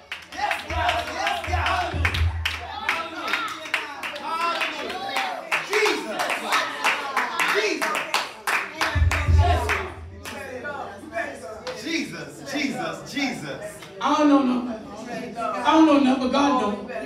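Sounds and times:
congregation clapping: 0:00.0 - 0:10.5.

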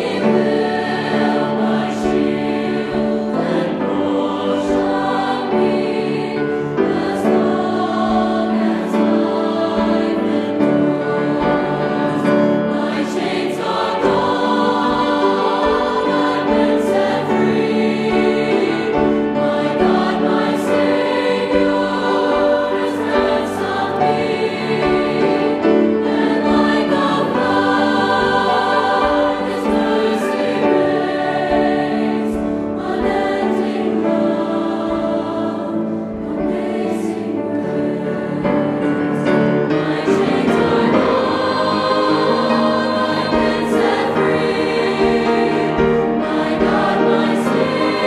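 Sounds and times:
mixed choir singing in harmony: 0:00.0 - 0:48.0.

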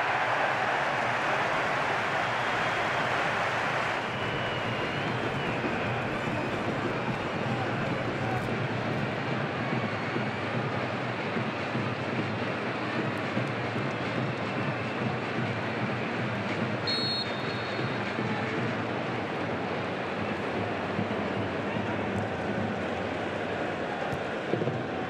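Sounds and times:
stadium crowd roaring: 0:00.0 - 0:25.0
high-pitched whistle: 0:16.8 - 0:18.0.

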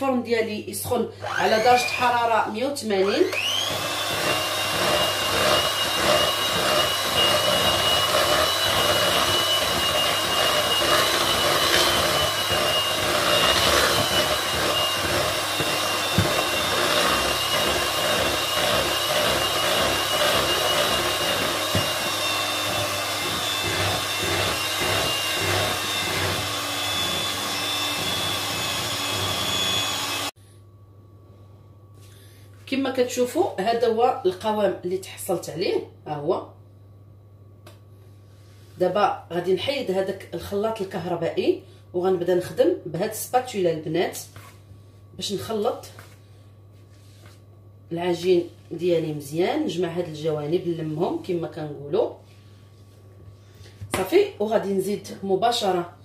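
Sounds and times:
electric hand mixer whisking batter: 0:01.2 - 0:30.4.

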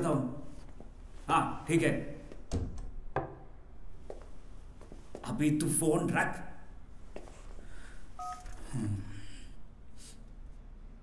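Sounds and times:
phone keypad beep: 0:08.2 - 0:08.6.

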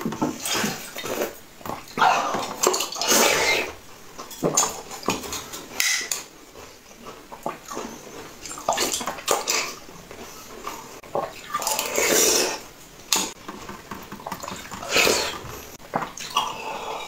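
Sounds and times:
wet slurping and chewing: 0:00.3 - 0:05.8, 0:06.5 - 0:17.0.

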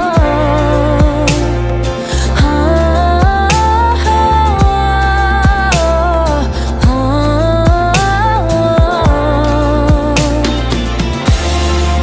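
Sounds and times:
woman singing wordless line: 0:00.0 - 0:10.7
slow pop backing track: 0:00.0 - 0:12.0.

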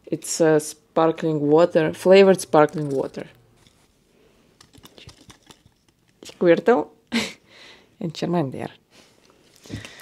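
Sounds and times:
toys handled with light clicks: 0:04.6 - 0:06.4.

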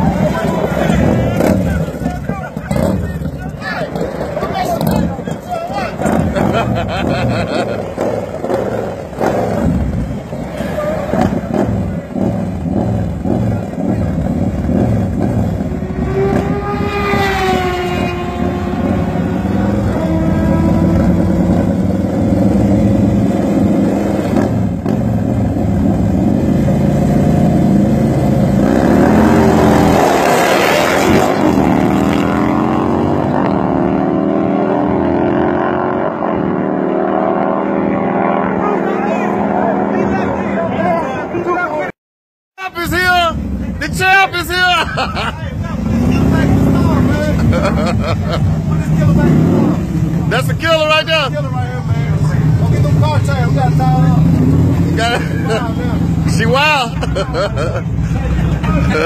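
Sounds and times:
motorcycle engines revving: 0:00.0 - 0:41.9, 0:42.8 - 0:59.0.

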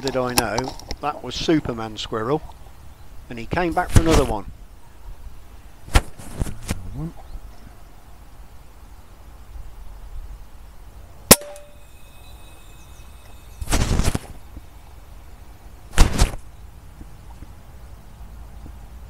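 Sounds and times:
rustling: 0:05.9 - 0:07.2, 0:13.4 - 0:14.7
air rifle shots: 0:11.3 - 0:11.7
metallic ringing: 0:11.3 - 0:13.7.

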